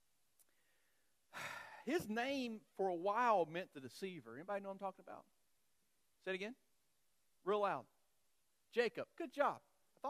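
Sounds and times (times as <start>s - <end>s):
man breathing into microphone: 0.5s - 1.9s
man speaking: 1.8s - 5.3s, 6.2s - 6.7s, 7.4s - 8.0s, 8.7s - 9.7s.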